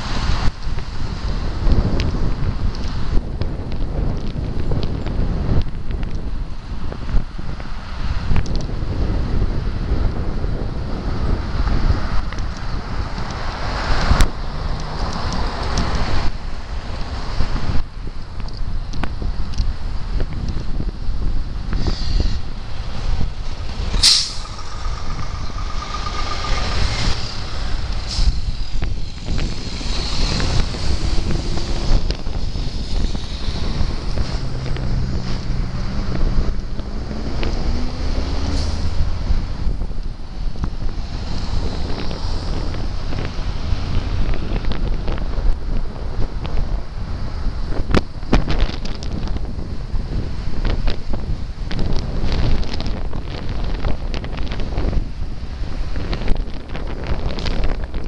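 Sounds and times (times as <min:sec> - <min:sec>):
heavy truck traffic: 0:00.0 - 0:05.5, 0:06.3 - 0:18.2, 0:18.8 - 0:47.8
wind rushing over microphone: 0:00.0 - 0:58.0
diesel engine pulling away: 0:12.7 - 0:16.3, 0:21.7 - 0:39.9
air brake hiss: 0:24.0 - 0:24.6, 0:28.1 - 0:28.7.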